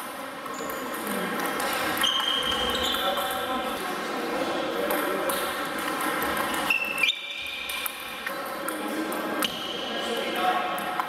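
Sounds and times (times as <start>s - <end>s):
murmur of voices in a hall: 0.0s - 11.0s
shoes squeaking on wooden floor: 2.0s - 3.2s, 6.6s - 7.6s.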